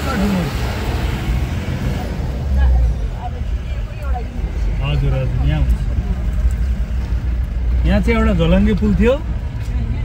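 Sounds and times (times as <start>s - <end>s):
vehicle engine and road rumble: 0.0s - 10.0s.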